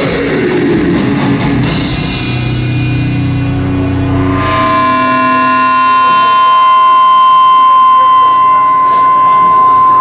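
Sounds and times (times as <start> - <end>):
metal band low held notes: 0.0 - 10.0
high sustained note: 2.4 - 10.0.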